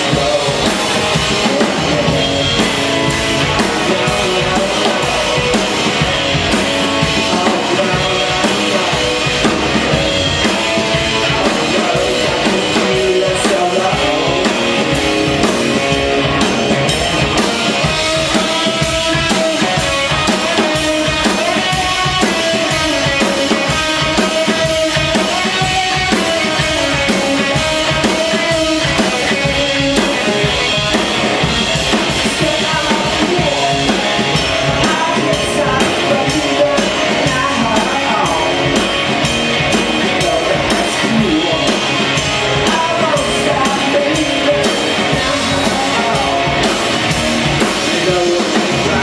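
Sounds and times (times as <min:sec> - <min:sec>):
drum kit and cymbals: 0:00.0 - 0:49.0
electric guitar: 0:00.0 - 0:49.0
rock band playing: 0:00.0 - 0:49.0.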